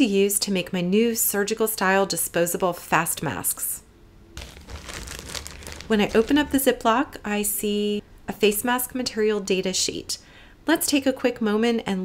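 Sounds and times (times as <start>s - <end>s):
plastic bag crinkling open: 4.4s - 6.6s.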